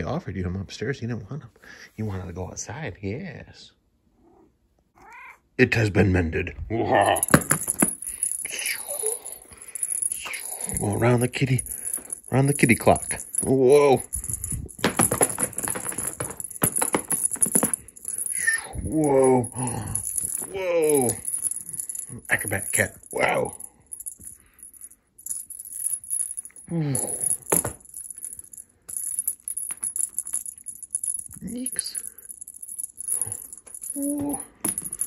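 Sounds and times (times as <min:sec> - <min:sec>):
cat toy jingling: 0:07.1 - 0:35.0.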